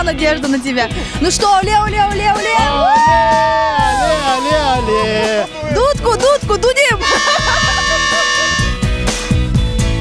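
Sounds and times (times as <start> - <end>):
background music with beat: 0.0 - 10.0
plastic fan horn blast: 7.0 - 8.8.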